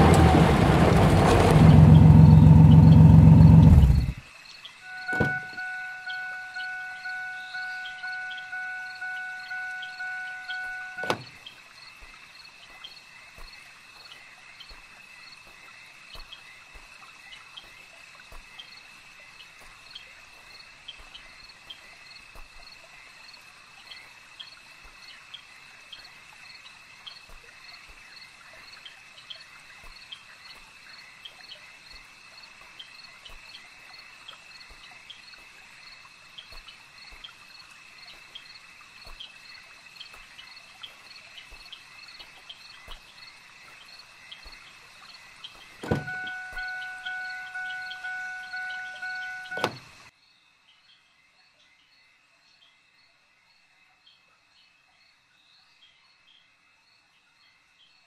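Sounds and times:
car door shutting: 0.0s - 4.2s, 5.0s - 6.0s, 9.4s - 11.4s, 45.8s - 50.0s
loud low rumble: 0.0s - 4.2s
crickets chirping: 0.0s - 58.0s
car door warning chime: 4.9s - 11.4s, 45.8s - 50.0s.

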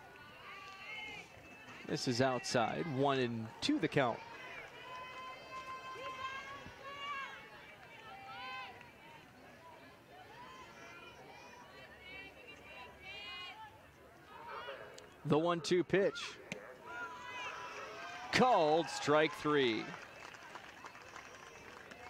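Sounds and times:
distant people shouting and chanting: 0.0s - 20.0s
outdoor crowd murmur: 0.0s - 22.0s.

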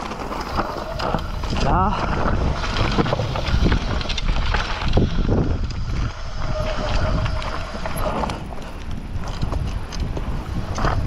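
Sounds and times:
bike rattling: 0.0s - 11.0s
bike tyres crunching: 0.0s - 11.0s
wind buffeting microphone: 0.0s - 11.0s.

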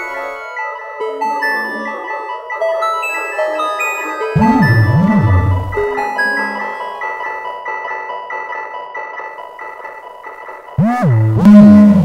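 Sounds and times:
deep synth tone sweeping upward: 4.4s - 6.0s, 10.8s - 12.0s
soft mallet-like synth note: 4.4s - 6.0s.

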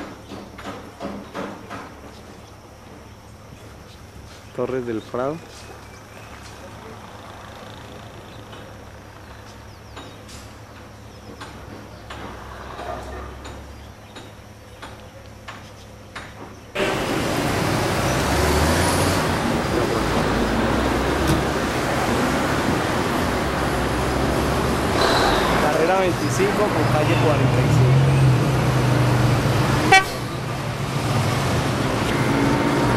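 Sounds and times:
passing traffic: 0.0s - 32.9s.

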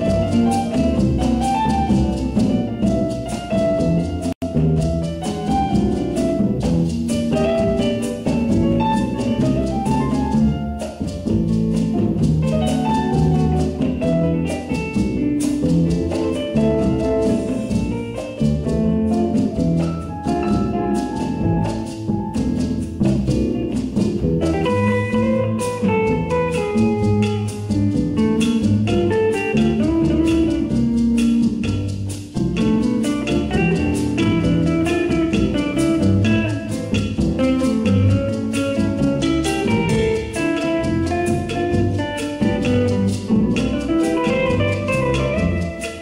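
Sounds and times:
jazz quartet playing bossa nova: 0.0s - 46.0s.

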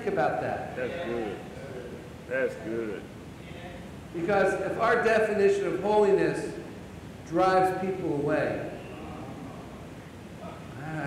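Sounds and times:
man preaching: 0.0s - 1.6s, 4.2s - 6.6s, 7.3s - 9.4s
hall room noise: 0.0s - 11.0s.

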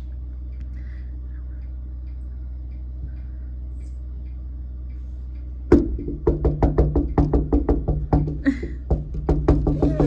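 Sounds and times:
low steady hum: 0.0s - 10.0s
rapid sharp knocks: 5.7s - 10.0s.

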